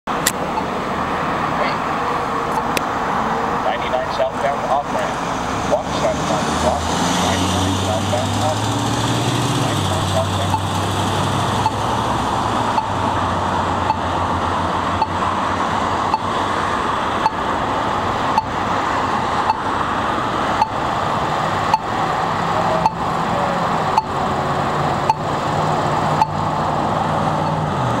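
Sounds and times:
road traffic: 0.0s - 28.0s
pedestrian signal ticking: 0.1s - 0.8s, 2.5s - 2.8s, 9.7s - 16.5s, 17.1s - 19.9s, 20.5s - 23.2s, 23.8s - 24.3s, 25.0s - 25.4s, 26.0s - 26.6s, 27.4s - 27.6s
idling vehicle hum: 0.1s - 28.0s.

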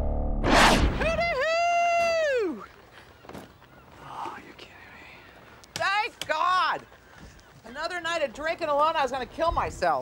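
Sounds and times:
person whispering: 4.0s - 5.3s.

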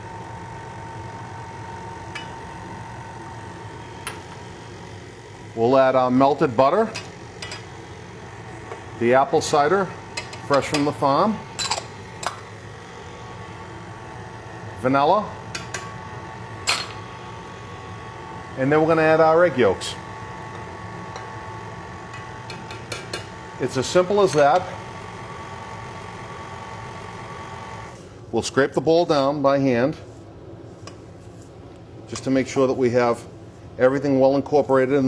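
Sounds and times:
stand mixer motor humming: 0.0s - 6.2s, 7.2s - 28.0s.

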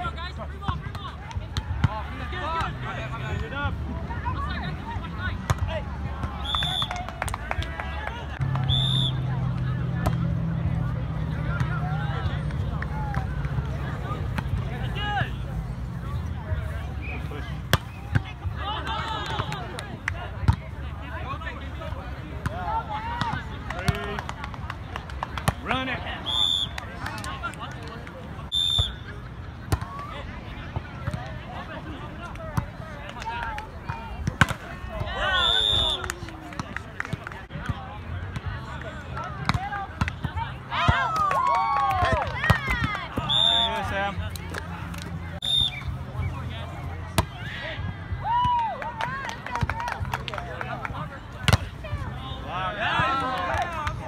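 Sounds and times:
players calling and shouting: 0.0s - 54.0s
shrill whistle-like tones: 8.6s - 9.2s, 26.2s - 26.8s, 28.5s - 29.0s, 35.2s - 36.1s, 43.2s - 43.9s, 45.4s - 46.4s.

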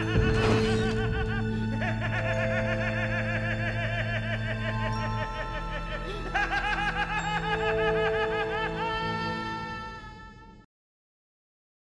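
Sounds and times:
rapid cackling laugh: 0.0s - 8.9s.

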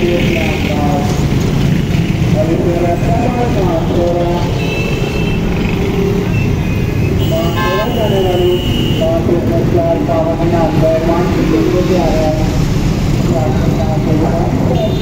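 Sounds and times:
traffic engine rumble: 0.0s - 15.0s
vehicle horns honking: 4.6s - 5.6s, 7.1s - 9.2s, 14.7s - 15.0s.

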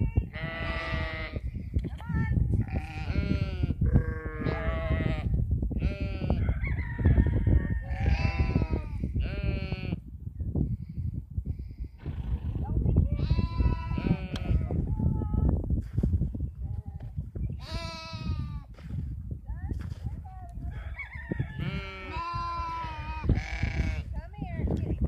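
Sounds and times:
sheep bleating: 0.3s - 1.4s, 2.7s - 6.4s, 7.9s - 10.0s, 13.2s - 14.8s, 17.6s - 18.6s, 21.6s - 24.0s.

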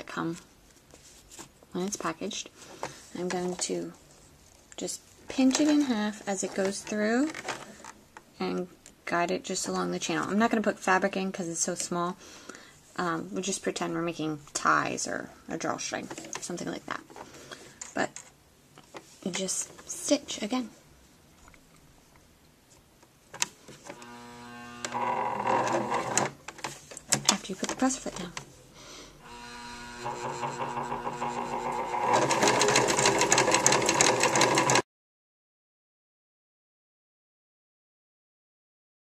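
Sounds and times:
electric sewing machine stitching: 23.9s - 26.4s, 29.2s - 34.8s.

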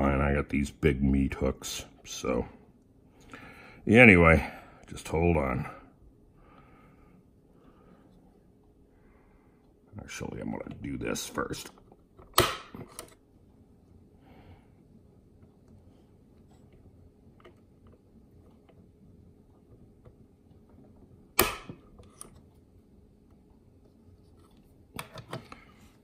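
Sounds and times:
spring-loaded center punch snapping: 21.4s - 21.8s.

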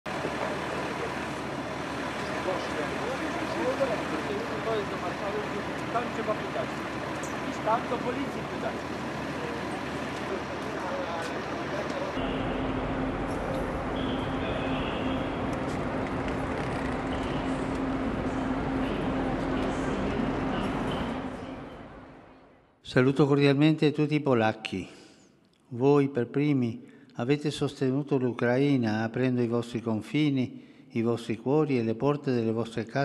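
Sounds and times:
vehicle engine: 0.0s - 22.8s
passengers bustling with luggage: 0.1s - 22.6s
indistinct crowd voices: 0.1s - 22.7s
low hum: 0.1s - 22.8s
traffic noise: 0.1s - 22.8s.

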